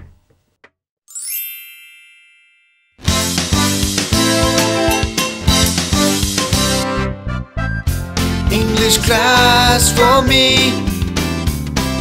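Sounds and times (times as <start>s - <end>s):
bright bell-like chime: 1.1s - 3.0s.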